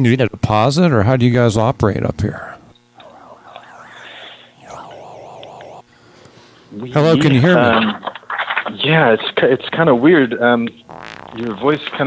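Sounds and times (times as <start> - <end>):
warbling noise on phone line: 3.0 - 5.9, 10.9 - 12.0.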